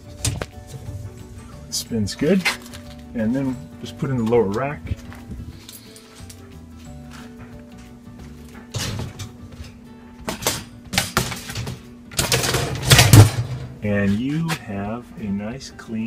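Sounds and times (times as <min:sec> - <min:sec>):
background music: 0:00.0 - 0:16.0
dishwasher rack rattling: 0:08.7 - 0:09.4.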